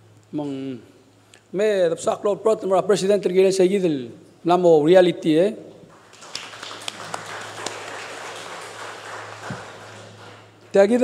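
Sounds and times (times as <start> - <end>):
faint electrical hum: 0.0 - 11.0
audience applause: 5.9 - 10.6.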